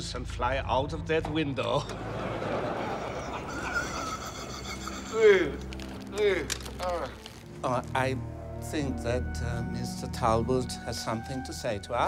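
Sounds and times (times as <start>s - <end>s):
men laughing together: 1.8s - 6.2s.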